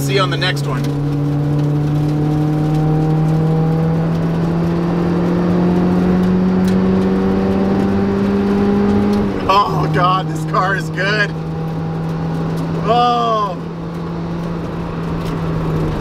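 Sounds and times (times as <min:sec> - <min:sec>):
car engine revving under throttle: 0:00.0 - 0:16.0.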